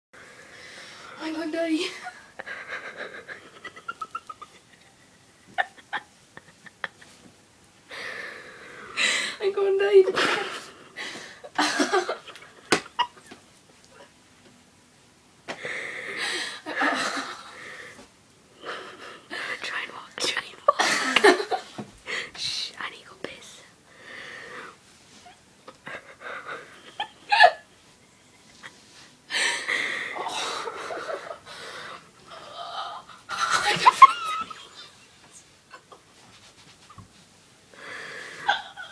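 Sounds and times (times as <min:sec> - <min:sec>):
girl whispering: 0:01.2 - 0:01.9, 0:19.6 - 0:20.7, 0:22.4 - 0:23.7
girl laughing breathlessly: 0:01.8 - 0:07.2, 0:15.6 - 0:18.0, 0:25.2 - 0:35.0, 0:37.8 - 0:38.9.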